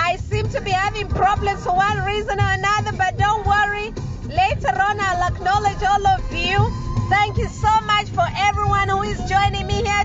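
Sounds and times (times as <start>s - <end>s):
car cabin rumble: 0.0s - 10.0s
woman singing: 4.4s - 10.0s.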